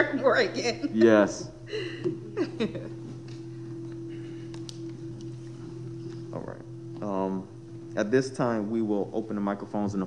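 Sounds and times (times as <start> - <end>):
low hum of held tones: 0.0 - 10.0.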